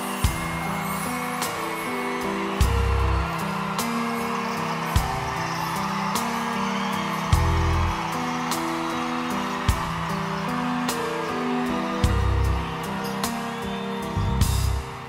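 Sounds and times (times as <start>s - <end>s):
band playing slow ballad: 0.0s - 15.0s.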